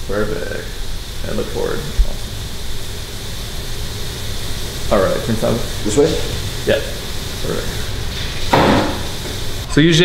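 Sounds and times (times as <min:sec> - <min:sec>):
even hiss: 0:00.0 - 0:10.0.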